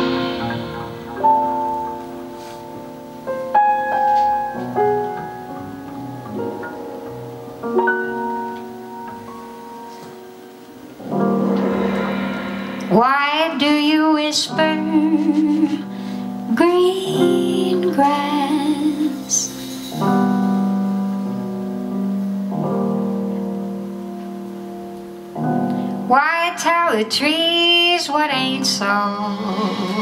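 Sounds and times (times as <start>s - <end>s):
jazz ballad on piano: 0.0s - 30.0s
woman singing: 12.9s - 15.9s, 16.5s - 19.6s, 26.1s - 30.0s.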